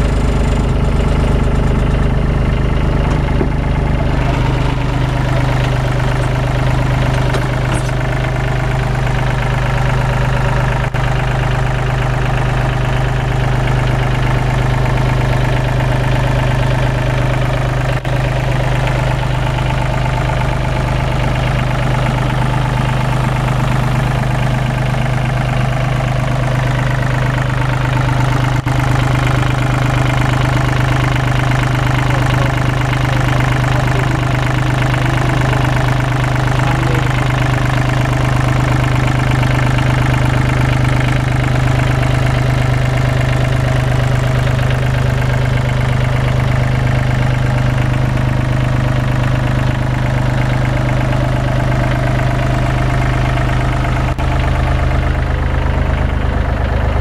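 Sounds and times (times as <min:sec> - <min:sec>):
diesel engine idling: 0:00.0 - 0:57.0.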